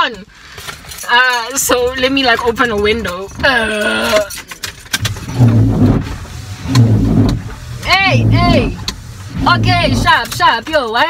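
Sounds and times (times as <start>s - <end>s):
windscreen wiper motor humming: 4.9s - 11.0s.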